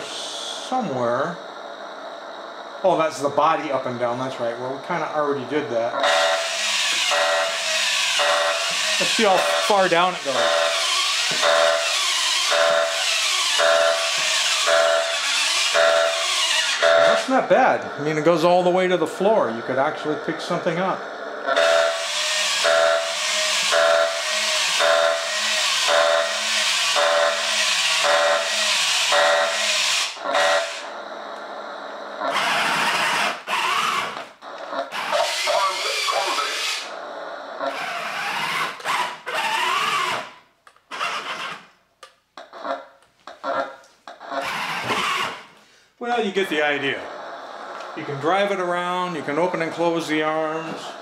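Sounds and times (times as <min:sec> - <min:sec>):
static hiss from speaker: 0:00.0 - 0:06.0, 0:17.1 - 0:21.6
toy robot motor whirring: 0:06.0 - 0:16.9, 0:21.6 - 0:30.9, 0:32.3 - 0:36.9, 0:37.7 - 0:41.7, 0:44.4 - 0:45.5.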